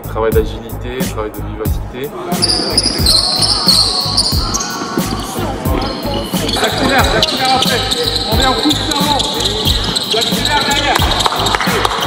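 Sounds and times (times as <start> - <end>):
background music with steady beat: 0.0 - 12.0
shoes squeaking on court: 2.3 - 12.0.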